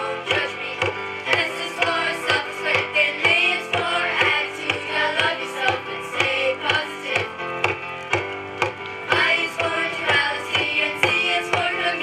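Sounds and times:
children singing: 0.0 - 7.3, 9.1 - 12.0
steady drum beat: 0.0 - 12.0.

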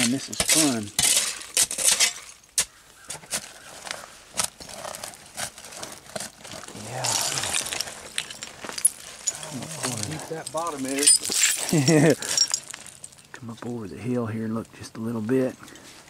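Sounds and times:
hand digging through dirt: 3.0 - 10.3
glass bottles clinking: 6.9 - 13.3.

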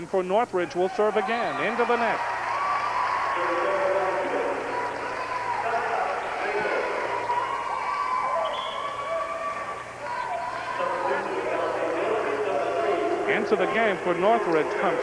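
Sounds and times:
crowd talking and calling out: 0.6 - 15.0.

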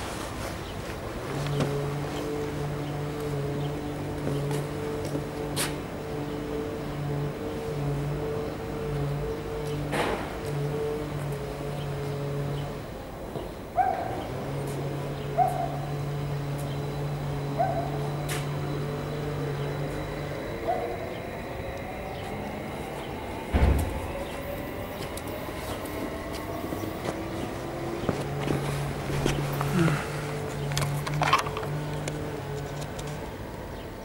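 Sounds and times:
train rolling with rushing noise: 0.0 - 34.0
low hum with overtones: 1.0 - 34.0
short rising hooting tones: 14.2 - 31.0.

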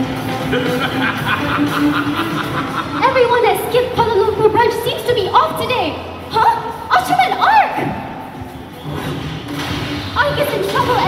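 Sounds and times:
soundtrack music over loudspeakers: 0.0 - 11.0.

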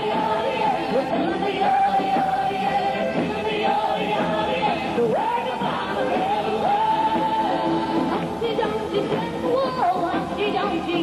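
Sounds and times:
music: 0.0 - 11.0
girl singing into a microphone: 8.4 - 11.0.

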